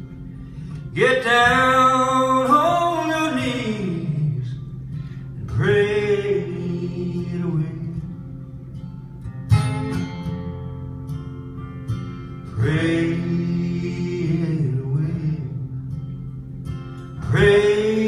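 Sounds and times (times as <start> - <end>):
acoustic guitars strummed: 0.0 - 18.0
man singing: 0.9 - 4.6, 5.4 - 8.2, 12.5 - 15.6, 17.2 - 18.0.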